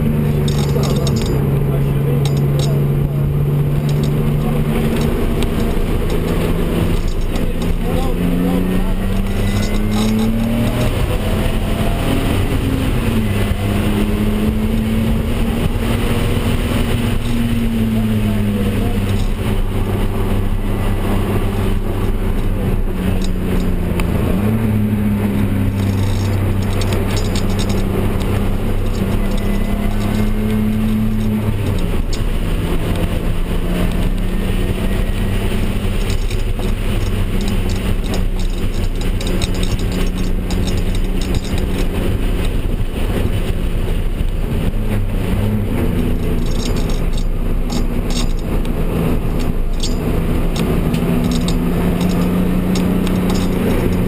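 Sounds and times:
car engine revving: 0.0 - 54.0
road and wind noise: 0.0 - 54.0.

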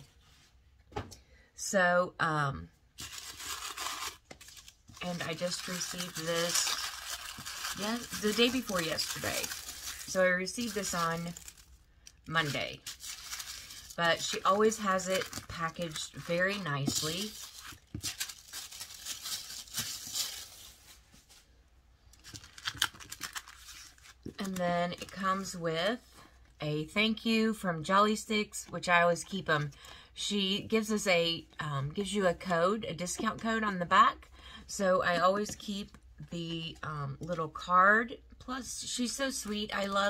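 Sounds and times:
tissue paper rustling and crinkling: 3.0 - 21.5, 22.2 - 25.2.

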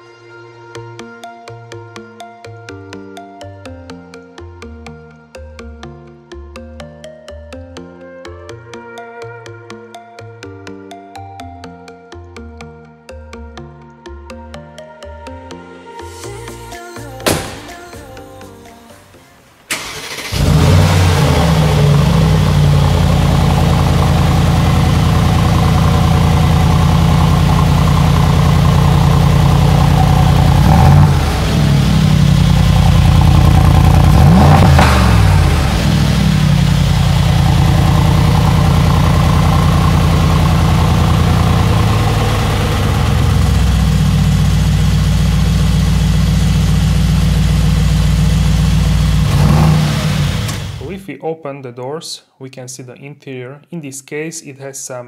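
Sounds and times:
car engine deep idle: 20.4 - 49.4.

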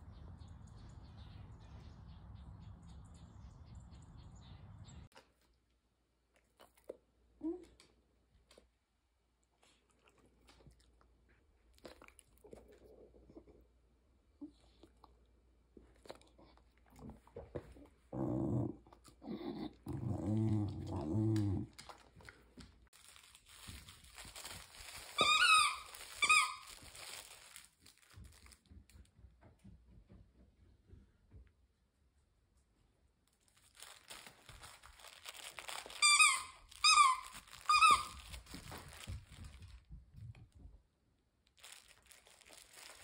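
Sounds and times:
dog growling low: 17.6 - 22.0
dog chewing plush toy: 25.0 - 26.9.

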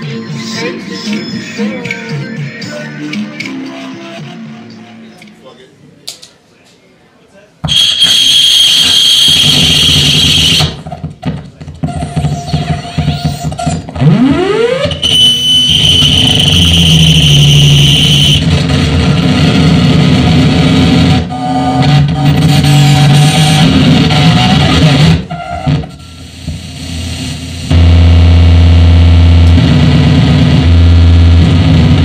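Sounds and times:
distorted noise music: 0.0 - 5.2, 7.6 - 32.0
piercing high tone: 14.1 - 18.4.

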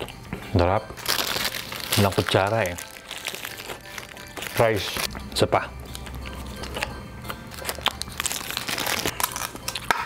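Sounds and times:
paper and plastic crinkling: 1.0 - 5.1, 5.9 - 9.9.

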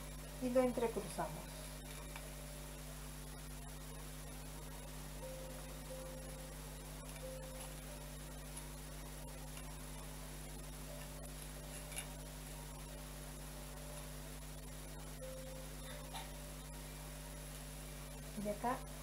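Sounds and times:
electrical mains hum: 0.0 - 19.0
thin high whine: 0.0 - 19.0.

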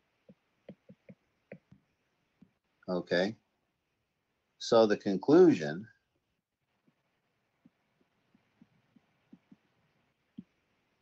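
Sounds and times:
stylus tapping on tablet screen: 0.2 - 2.6, 6.7 - 10.7.

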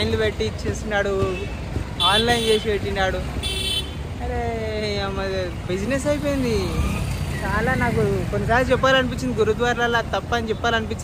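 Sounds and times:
street traffic rumble: 0.0 - 11.0
vehicle horn: 2.0 - 2.7, 3.4 - 4.0.

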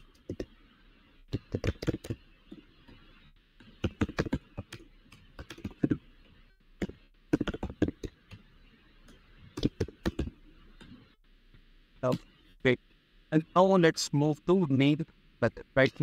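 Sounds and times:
typing on computer keyboard: 1.3 - 2.2, 3.8 - 4.8, 5.4 - 5.9.

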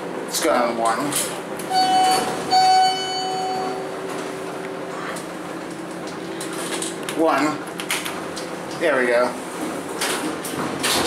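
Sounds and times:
elevator car humming: 0.0 - 11.0.

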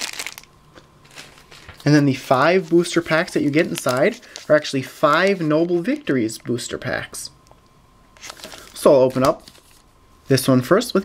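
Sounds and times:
plastic bag crinkling: 0.0 - 6.3, 8.2 - 9.9.

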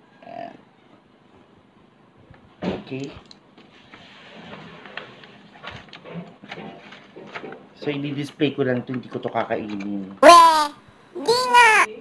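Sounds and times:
person speaking: 10.2 - 12.0.

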